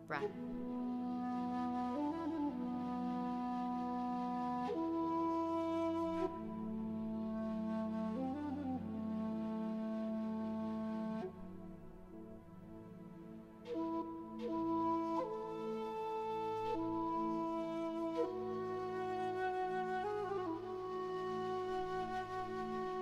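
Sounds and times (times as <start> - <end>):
flute-like long notes: 0.0 - 23.0.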